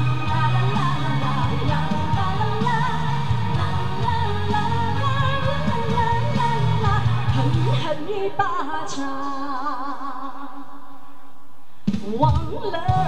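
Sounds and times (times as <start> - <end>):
pop ballad backing track: 0.0 - 8.1
woman singing: 0.0 - 11.0, 12.0 - 13.0.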